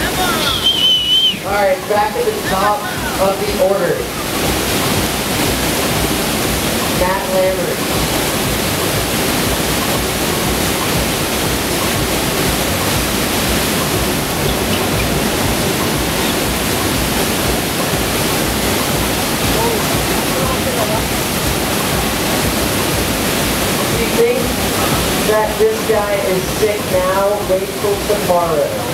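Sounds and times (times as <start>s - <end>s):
water rushing: 0.0s - 28.9s.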